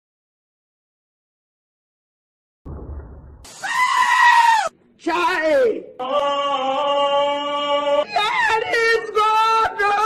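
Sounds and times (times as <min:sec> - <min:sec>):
loud high-pitched scream: 0:03.5 - 0:04.8.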